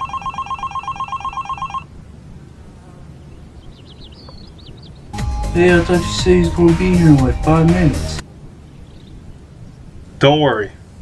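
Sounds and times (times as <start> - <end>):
phone ringing: 0.0 - 1.9.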